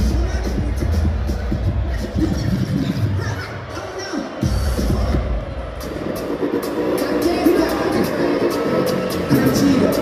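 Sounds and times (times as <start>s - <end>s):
bass-heavy music over pa: 0.0s - 3.4s, 4.4s - 10.0s
crowd noise: 0.0s - 10.0s.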